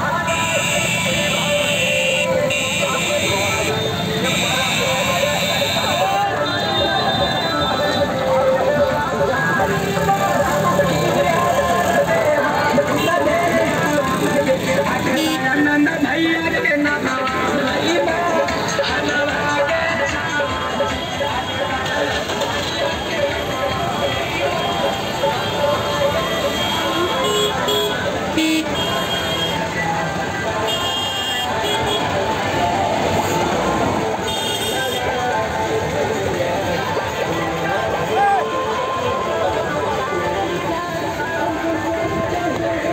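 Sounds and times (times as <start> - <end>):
background voices: 0.0 - 42.9
loud music: 0.0 - 42.9
motorcycle and rickshaw engines: 0.0 - 42.9
horn toots: 0.2 - 8.2, 24.4 - 29.7.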